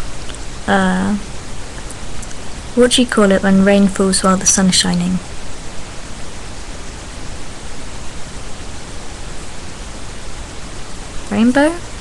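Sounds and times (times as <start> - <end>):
microphone background hiss: 0.0 - 12.0.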